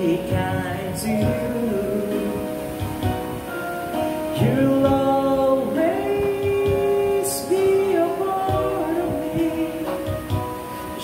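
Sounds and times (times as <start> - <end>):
man singing into microphone: 0.0 - 3.6, 4.2 - 11.0
backing music: 0.0 - 11.0.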